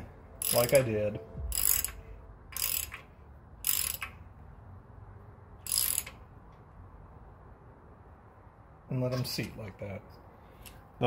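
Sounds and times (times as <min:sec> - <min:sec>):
socket ratchet clicking: 0:01.5 - 0:04.2, 0:05.6 - 0:06.2.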